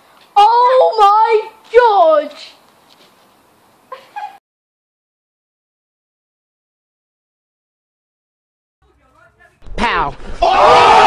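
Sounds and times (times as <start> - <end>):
person exclaiming: 9.3 - 11.0.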